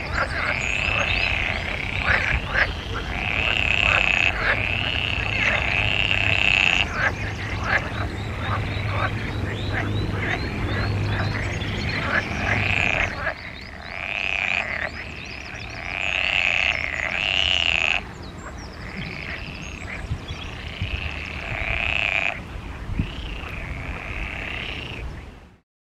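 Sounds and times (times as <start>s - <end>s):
frog croaking: 0.0s - 18.1s, 18.8s - 22.4s, 23.0s - 25.0s.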